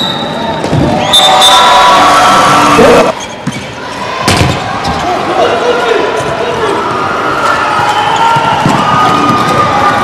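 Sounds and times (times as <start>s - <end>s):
crowd noise in a hall: 0.0s - 10.0s
ball bouncing on court: 3.4s - 5.0s.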